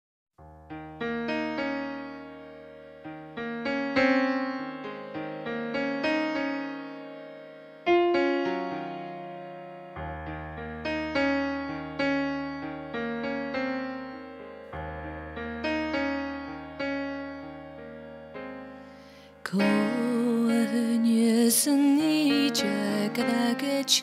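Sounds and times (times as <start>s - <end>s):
slow electric piano chords: 0.4s - 24.0s.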